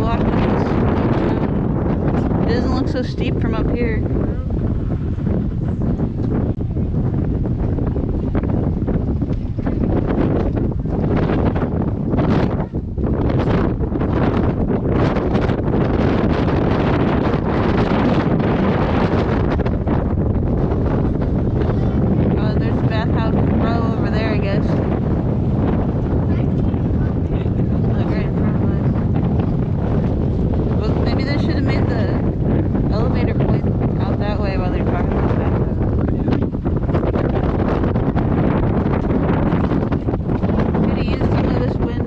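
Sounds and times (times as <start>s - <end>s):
wind buffeting microphone: 0.0s - 42.0s.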